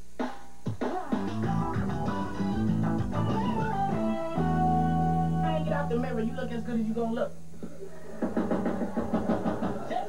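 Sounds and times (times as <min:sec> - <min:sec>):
studio audience cheering and laughing: 0:07.8 - 0:10.0.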